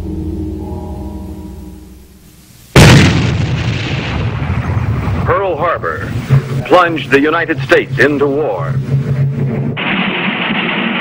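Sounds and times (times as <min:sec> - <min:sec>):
background music: 0:00.0 - 0:02.4
explosion boom with rumble: 0:02.8 - 0:06.6, 0:08.9 - 0:11.0.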